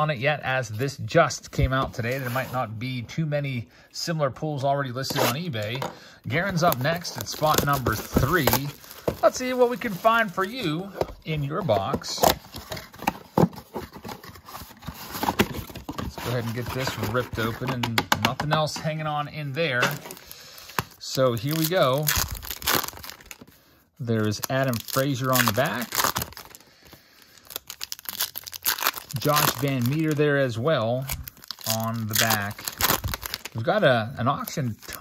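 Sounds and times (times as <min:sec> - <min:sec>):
foil wrapper crinkling and tearing: 0:06.4 - 0:10.8, 0:20.0 - 0:23.5, 0:24.2 - 0:30.3, 0:30.9 - 0:33.6.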